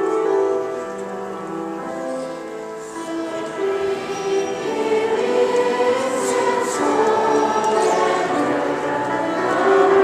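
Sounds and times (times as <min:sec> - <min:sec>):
children's choir singing: 0:02.3 - 0:10.0.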